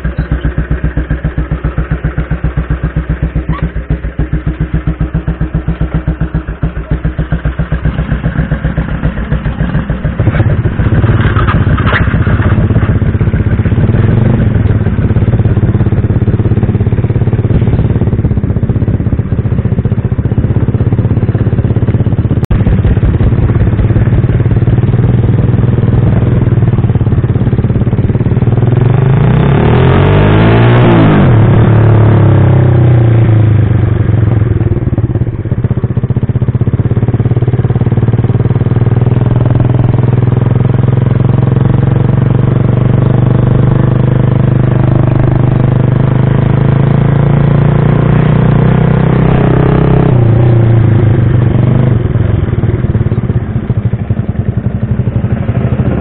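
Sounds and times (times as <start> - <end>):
motorcycle passing: 0.0 - 35.7, 36.7 - 56.0
motorcycle engine: 0.0 - 56.0.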